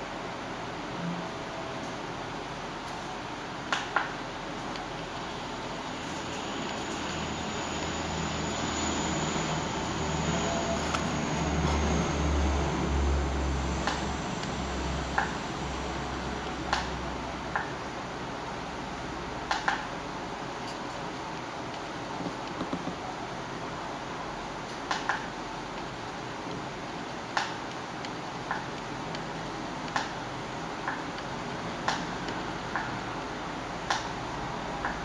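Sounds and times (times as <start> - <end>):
steady background noise: 0.0 - 35.0.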